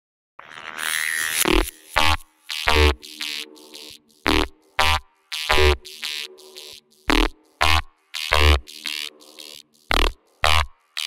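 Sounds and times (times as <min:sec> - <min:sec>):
buzzing synthesizer: 0:00.4 - 0:11.0.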